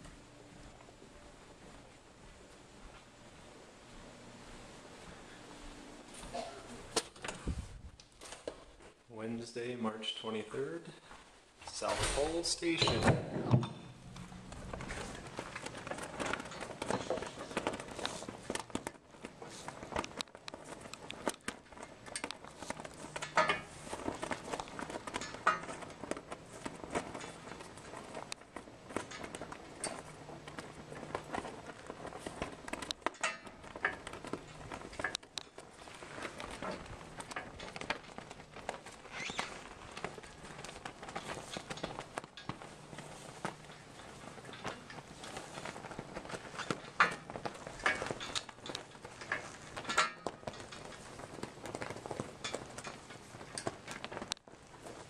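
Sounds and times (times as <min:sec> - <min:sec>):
footsteps crunching: 0:00.0 - 0:09.2, 0:10.3 - 0:55.0.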